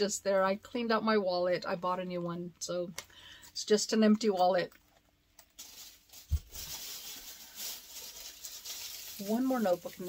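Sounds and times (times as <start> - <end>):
shrink-wrap rustling and crinkling: 5.4 - 10.0.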